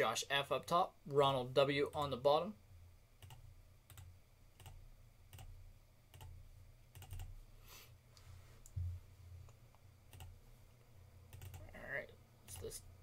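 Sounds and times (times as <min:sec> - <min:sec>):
keyboard and mouse clicks: 0:06.9 - 0:07.3, 0:10.1 - 0:10.3, 0:11.3 - 0:11.7
soft low thump: 0:08.7 - 0:09.1.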